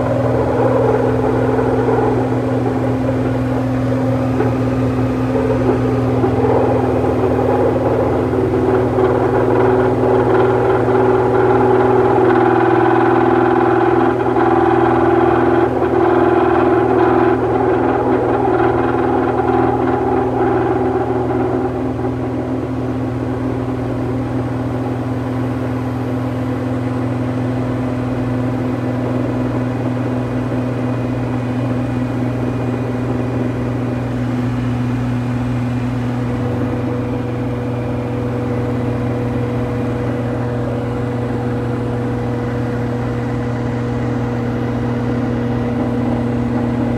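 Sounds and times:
washing machine drum droning: 0.0 - 46.9.

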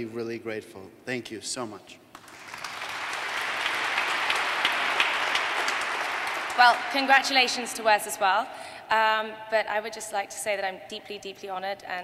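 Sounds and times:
audience applauding: 2.1 - 7.8.

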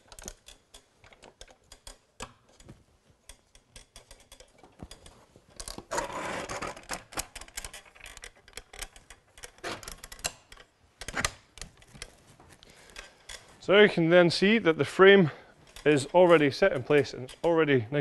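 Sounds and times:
metal table legs clicking and rattling: 0.0 - 13.6, 15.6 - 18.0
rattling scrape: 14.4 - 18.0.

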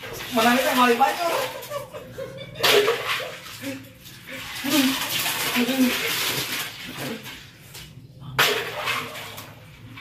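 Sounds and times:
water splashing: 0.0 - 10.0.

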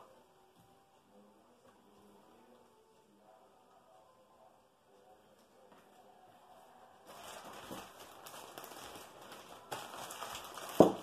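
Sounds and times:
plastic bag crinkling: 7.1 - 11.0.

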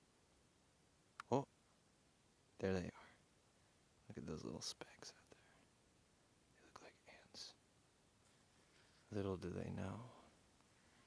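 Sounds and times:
man whispering: 2.6 - 3.2, 4.1 - 5.7, 6.5 - 7.6, 8.9 - 10.4.

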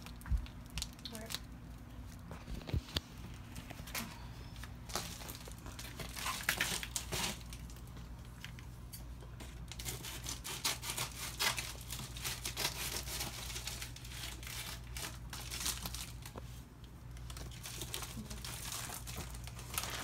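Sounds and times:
packaging crinkling and tearing: 0.0 - 8.7, 9.5 - 20.0
scissors cutting plastic mailer: 9.6 - 16.2.

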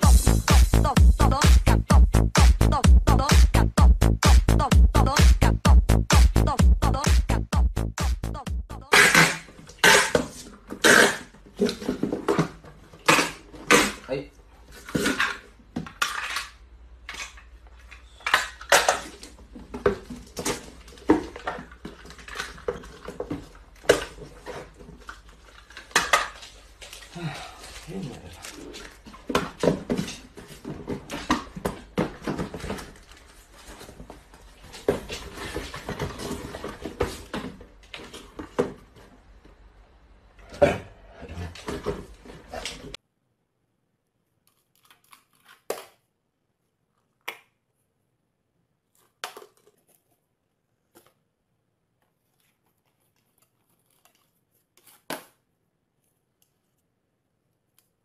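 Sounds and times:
cardboard rustling: 19.2 - 39.3, 51.9 - 55.4
cardboard boxes knocking on tiled floor: 29.1 - 39.0.

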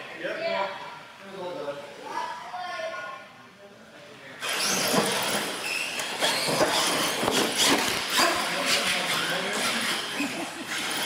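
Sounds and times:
toy truck motor and tyre noise: 4.4 - 11.0.

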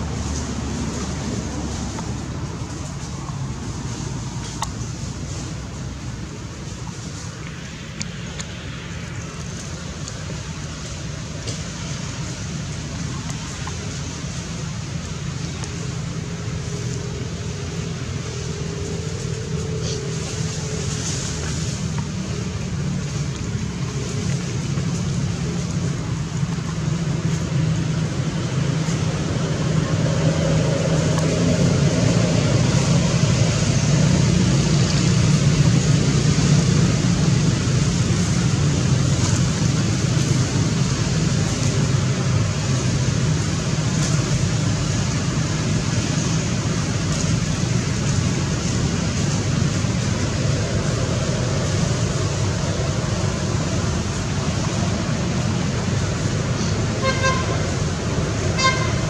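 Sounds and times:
vehicle traffic noise: 0.0 - 59.0.

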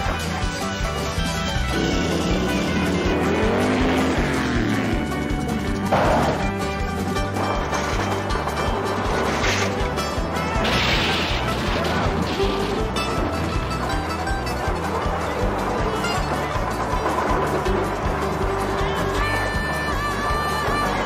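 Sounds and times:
soundtrack music: 0.0 - 21.0
tyres skidding: 0.0 - 21.0
car engine rising and falling: 1.6 - 6.7
crash impact: 10.5 - 13.2.

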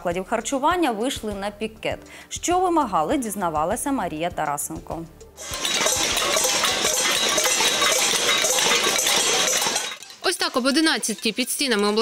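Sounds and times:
crowd banging metal pots: 5.4 - 12.0.

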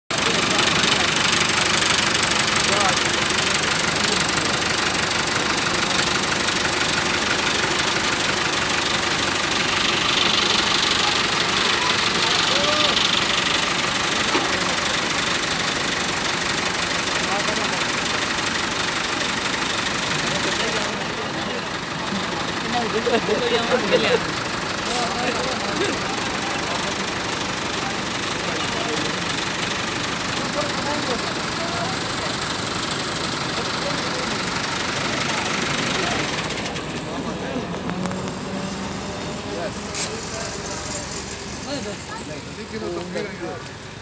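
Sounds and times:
tractor diesel engine running: 0.1 - 44.0.

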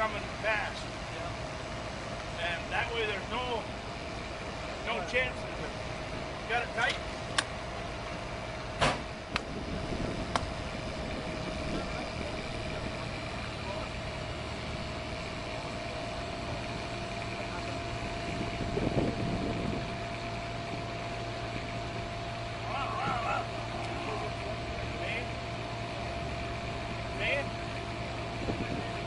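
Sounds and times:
low mechanical hum: 0.0 - 29.0.

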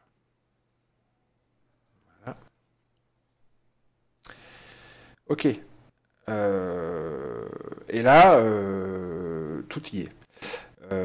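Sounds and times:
faint computer mouse clicks: 0.7 - 0.9, 1.7 - 3.4.

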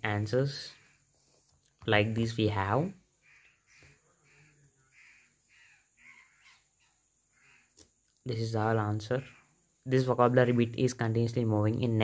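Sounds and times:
faint bird call: 3.2 - 7.9.

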